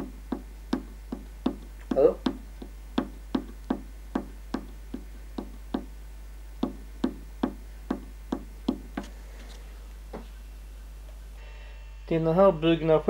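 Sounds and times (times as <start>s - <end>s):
screwdriver tapping wooden plate: 0.0s - 5.9s, 6.6s - 9.1s.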